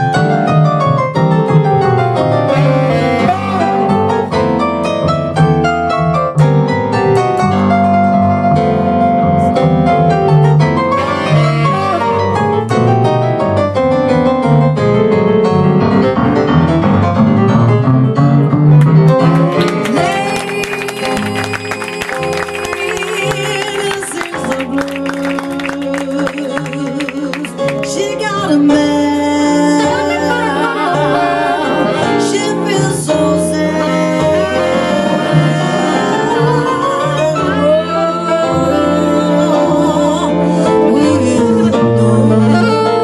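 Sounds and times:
plucked double bass: 0:00.0 - 0:20.3
double bass: 0:00.0 - 0:43.0
jazz piano solo: 0:00.0 - 0:43.0
sustained horn tones: 0:02.1 - 0:04.8, 0:10.6 - 0:13.4, 0:28.5 - 0:43.0
saxophones: 0:02.4 - 0:04.6, 0:10.8 - 0:13.1, 0:29.3 - 0:43.0
woman singing: 0:19.8 - 0:43.0.

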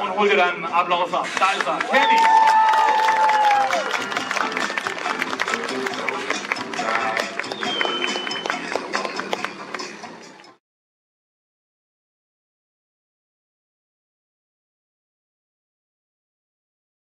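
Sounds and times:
music playing: 0:00.0 - 0:10.6
audience applauding: 0:01.4 - 0:09.9.

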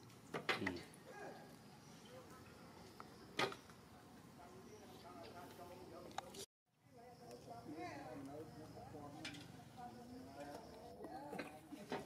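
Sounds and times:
people talking in background: 0:00.6 - 0:12.0.

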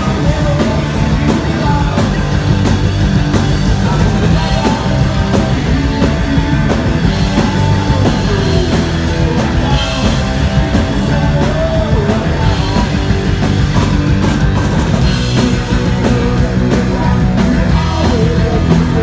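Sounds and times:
bass guitar: 0:00.0 - 0:19.0
drum kit: 0:00.0 - 0:19.0
electric guitars: 0:00.0 - 0:19.0.

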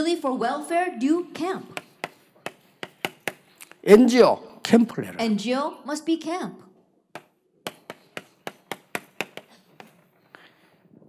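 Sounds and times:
chalk tapping on a blackboard: 0:01.6 - 0:03.6, 0:07.2 - 0:10.1.

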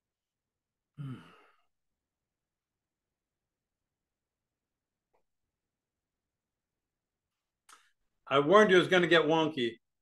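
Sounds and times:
person sighing: 0:00.9 - 0:01.7.

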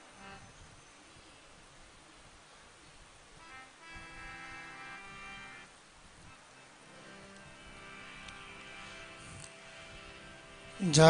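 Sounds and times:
harmonium chords: 0:00.0 - 0:01.3, 0:03.3 - 0:11.0.

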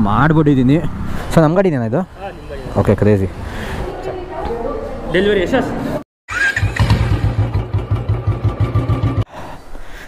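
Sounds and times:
street noise: 0:00.0 - 0:10.0
motorcycle engine running: 0:06.6 - 0:09.2.

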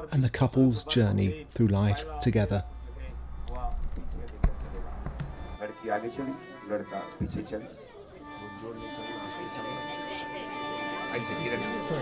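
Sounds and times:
faint voices: 0:02.4 - 0:12.0
sharp thump: 0:07.2 - 0:07.6.

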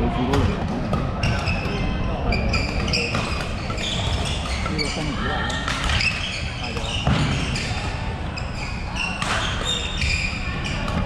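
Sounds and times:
background chatter: 0:00.0 - 0:11.0
shoes squeaking: 0:01.2 - 0:11.0.

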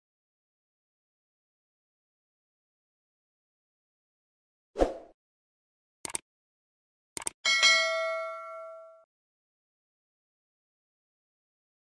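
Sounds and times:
mouse clicks: 0:06.0 - 0:06.2
notification bell ding: 0:07.5 - 0:09.1.

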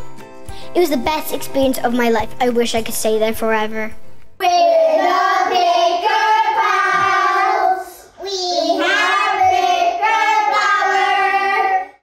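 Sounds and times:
children singing: 0:04.4 - 0:12.0.

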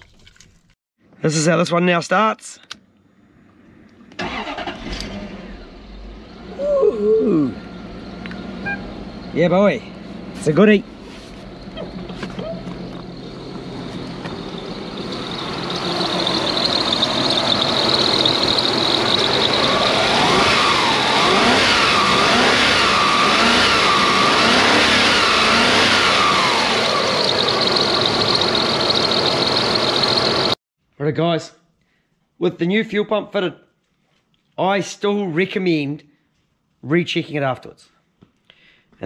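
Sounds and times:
car engine revving: 0:07.2 - 0:10.9, 0:11.5 - 0:30.6.

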